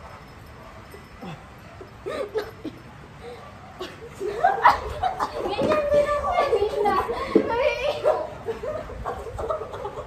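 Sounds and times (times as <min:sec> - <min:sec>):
child talking and exclaiming: 0:05.4 - 0:08.4.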